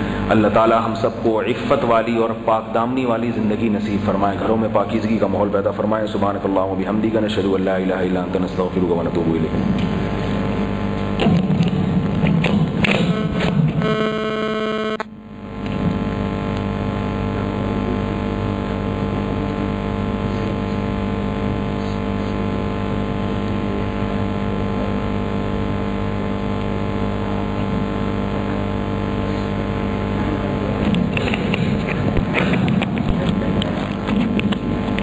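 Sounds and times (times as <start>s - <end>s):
drone of held tones: 9.4s - 32.2s
electronic tone: 9.5s - 32.4s.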